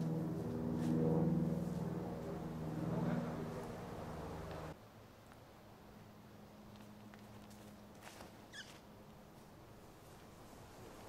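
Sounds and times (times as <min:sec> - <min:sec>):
small bird chirp: 0:08.5 - 0:08.8.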